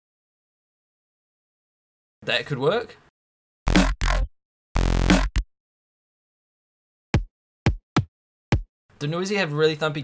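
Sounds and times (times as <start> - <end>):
punchy electronic snare hits: 3.7 - 4.2, 4.8 - 5.4.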